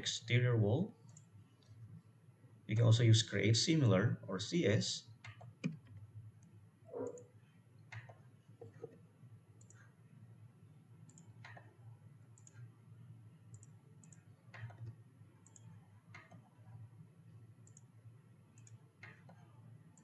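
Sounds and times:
computer mouse clicks: 0:05.2 - 0:07.3, 0:07.9 - 0:09.0, 0:09.6 - 0:09.9, 0:11.1 - 0:11.8, 0:12.4 - 0:12.7, 0:13.5 - 0:16.8, 0:17.6 - 0:17.9, 0:18.6 - 0:20.0.

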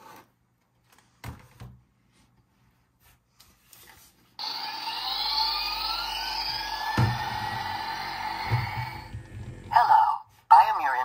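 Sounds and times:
electronic spaceship sound effect: 0:04.4 - 0:09.2.

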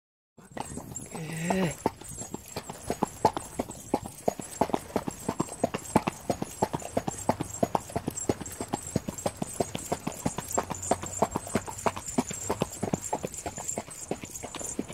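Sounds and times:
horse hooves clip-clopping on pavement: 0:00.4 - 0:14.9
jingling bells: 0:00.5 - 0:14.9.

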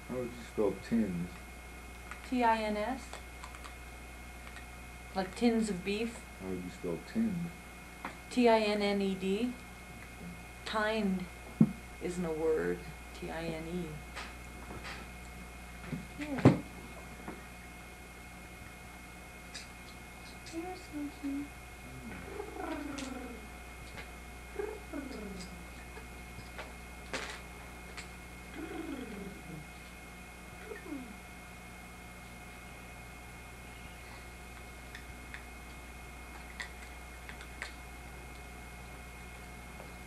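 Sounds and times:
low steady hum: 0:00.0 - 0:40.0
baby raccoons chirping and whimpering: 0:22.2 - 0:23.5.

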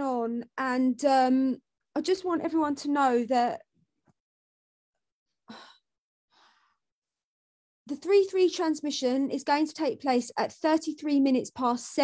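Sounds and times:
woman breathing in: 0:05.5 - 0:06.9.

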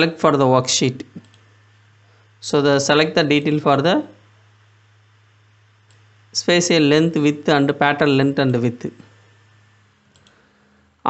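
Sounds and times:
faint steady hum: 0:00.0 - 0:11.0
room hiss: 0:00.0 - 0:11.0
computer mouse clicks: 0:01.1 - 0:01.5, 0:10.1 - 0:10.4.

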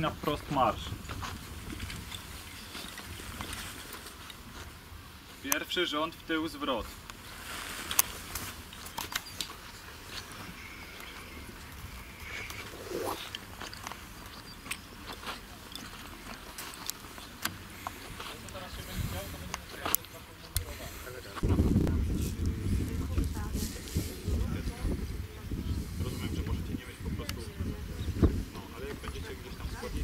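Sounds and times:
small clicks and rustles: 0:01.2 - 0:04.8, 0:06.9 - 0:11.2, 0:13.3 - 0:18.6.

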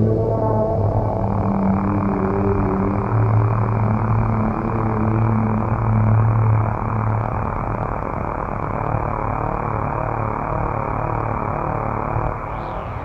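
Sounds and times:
low synthesizer hum: 0:00.0 - 0:13.0.

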